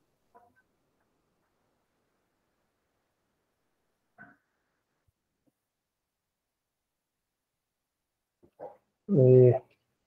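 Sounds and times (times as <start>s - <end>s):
faint vocal sound: 9.1s - 9.7s
person speaking: 9.1s - 9.8s.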